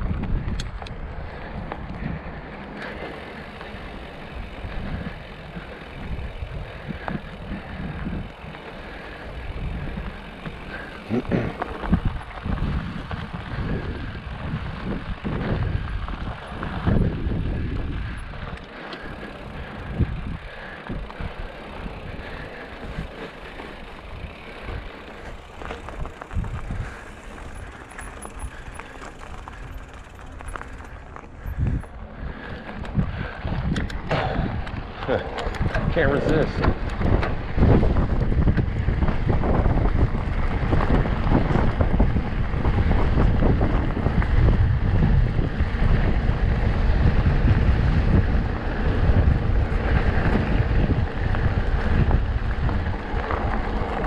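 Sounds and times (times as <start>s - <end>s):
bike jolting over bumps: 0.0s - 54.0s
bike tyres rumbling on gravel: 0.0s - 54.0s.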